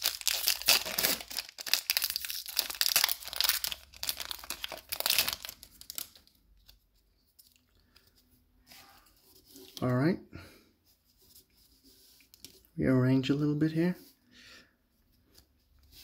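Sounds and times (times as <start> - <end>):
foil wrapper tearing and crinkling: 0.0 - 6.2.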